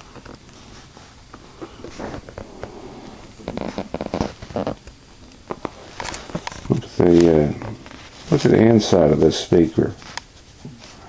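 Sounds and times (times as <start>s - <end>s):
paper pages rustling: 3.4s - 8.9s.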